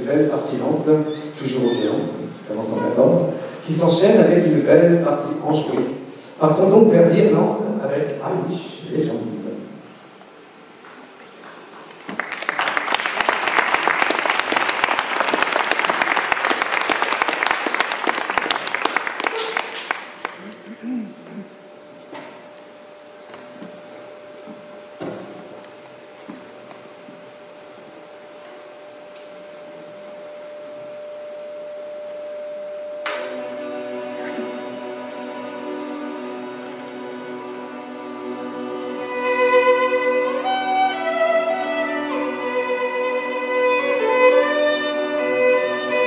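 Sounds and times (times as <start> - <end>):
audience applause: 11.9 - 20.6
faint steady tone: 27.3 - 36.2
string ensemble playing: 33.2 - 46.0.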